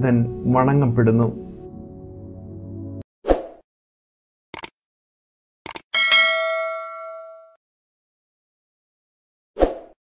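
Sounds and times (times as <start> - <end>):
notification bell ding: 6.0 - 7.6.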